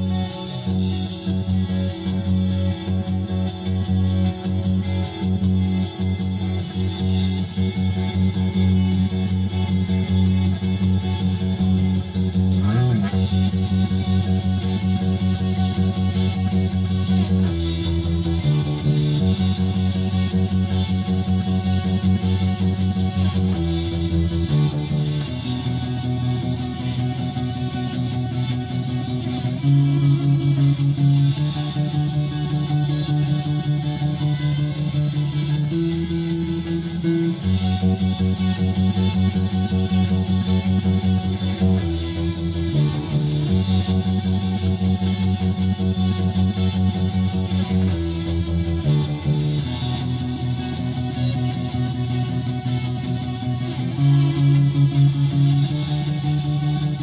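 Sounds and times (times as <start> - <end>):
electric bass guitar: 0.0 - 57.0
rock song with electric guitars: 0.0 - 57.0.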